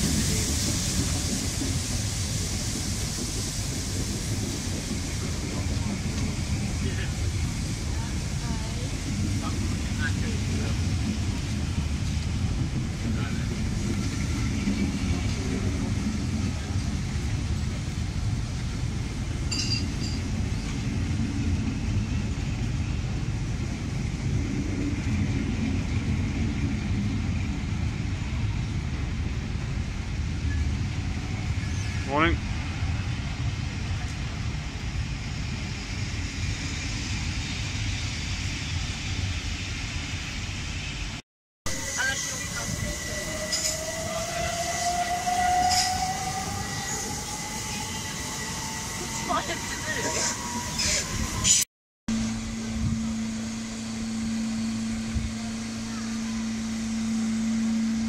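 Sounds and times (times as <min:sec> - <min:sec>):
train wheels rumbling on rails: 0:00.0 - 0:58.0
rising wheel squeal: 0:41.7 - 0:51.6.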